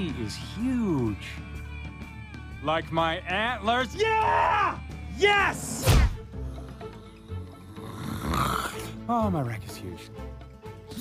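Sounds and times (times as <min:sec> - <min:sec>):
soft background music: 0:00.0 - 0:11.0
cartoon snoring: 0:07.2 - 0:09.0.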